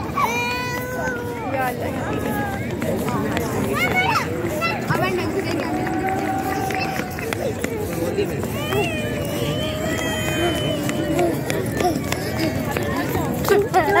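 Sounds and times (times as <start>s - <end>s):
high-pitched children's voices: 0.0s - 1.5s, 3.5s - 7.5s, 8.4s - 14.0s
crowd background: 0.0s - 14.0s
people chattering: 0.0s - 14.0s.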